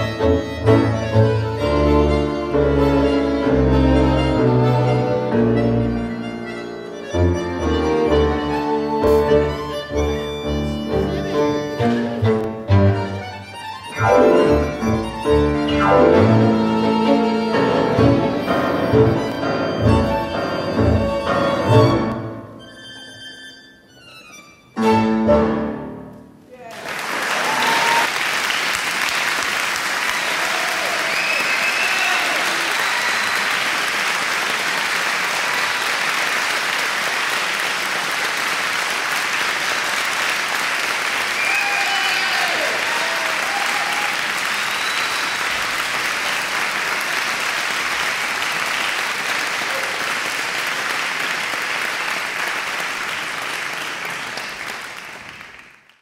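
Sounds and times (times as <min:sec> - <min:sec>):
audience applauding: 0:26.6 - 0:56.0
crowd shouts: 0:30.4 - 0:33.0, 0:41.4 - 0:44.1.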